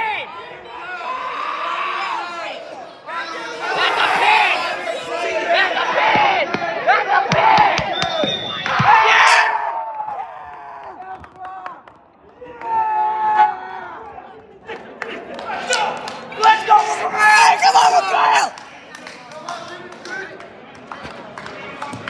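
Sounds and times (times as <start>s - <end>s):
spectators shouting and cheering: 0.0s - 20.3s.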